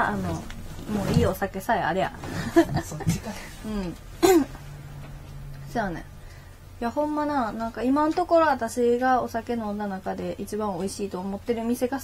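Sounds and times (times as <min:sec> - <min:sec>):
woman clearing her throat: 0:04.2 - 0:04.6.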